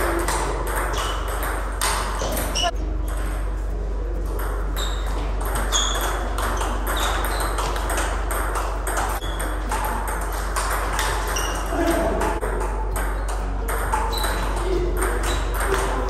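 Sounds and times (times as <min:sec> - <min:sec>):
table tennis balls clicking: 0:00.0 - 0:03.4, 0:04.2 - 0:16.0.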